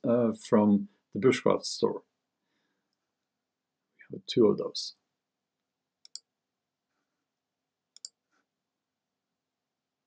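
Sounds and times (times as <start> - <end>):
computer mouse clicks: 6.0 - 6.3, 7.9 - 8.2.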